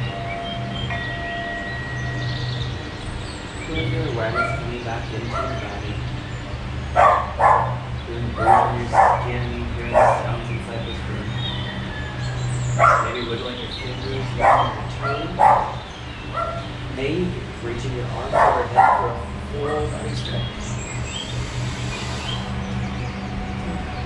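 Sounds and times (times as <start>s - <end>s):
steady low hum: 0.0s - 24.0s
dog barking: 4.3s - 5.8s, 7.0s - 10.5s, 12.8s - 13.3s, 14.4s - 15.8s, 16.4s - 16.6s, 18.1s - 19.2s.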